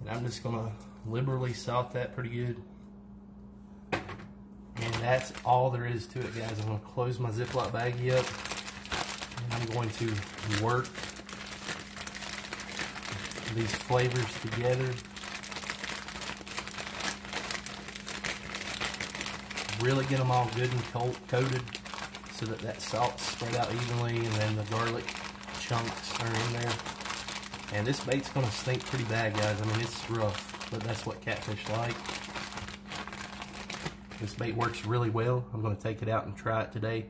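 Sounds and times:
faint steady hum: 0.0 - 37.0
plastic bag crinkling: 4.8 - 35.0.

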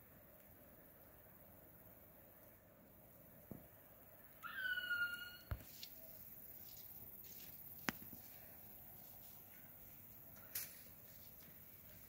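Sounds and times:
faint outdoor hiss: 0.0 - 12.0
bird whistled call: 4.4 - 5.6.

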